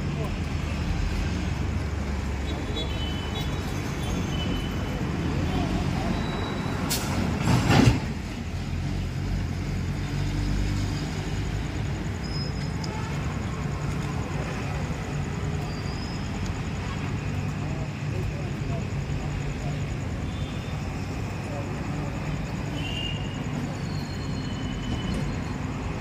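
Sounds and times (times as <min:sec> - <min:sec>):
traffic engine rumble: 0:00.0 - 0:26.0.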